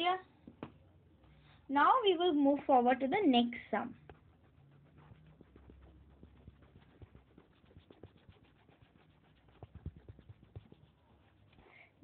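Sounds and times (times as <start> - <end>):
stylus tapping on tablet screen: 9.4 - 10.9.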